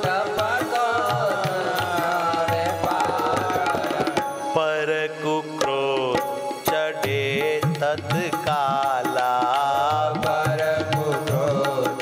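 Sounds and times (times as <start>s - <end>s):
devotional singing: 0.0s - 12.0s
harmonium: 0.0s - 12.0s.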